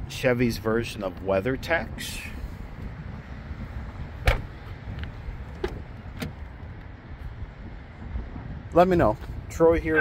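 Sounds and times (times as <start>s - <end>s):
car door latch clicks: 4.2s - 4.5s, 5.5s - 6.5s.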